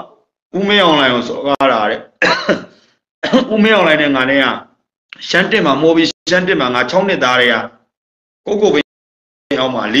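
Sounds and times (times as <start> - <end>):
man speaking: 0.0 - 2.3, 3.2 - 7.9, 8.5 - 8.9, 9.5 - 10.0.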